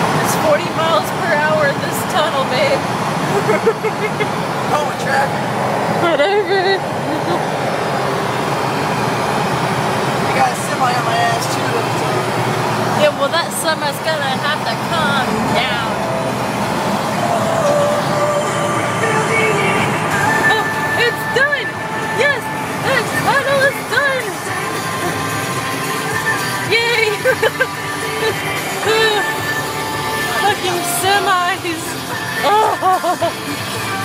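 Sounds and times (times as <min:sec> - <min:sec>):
car road noise in tunnel: 0:00.0 - 0:34.0
truck engine close behind: 0:00.0 - 0:34.0
woman laughing: 0:03.3 - 0:04.4, 0:06.0 - 0:07.5, 0:20.4 - 0:21.6, 0:26.7 - 0:29.4, 0:32.4 - 0:33.6.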